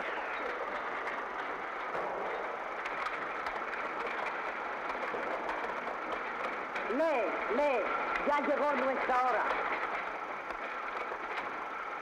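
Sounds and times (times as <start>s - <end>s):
workshop machinery clatter: 0.0s - 12.0s.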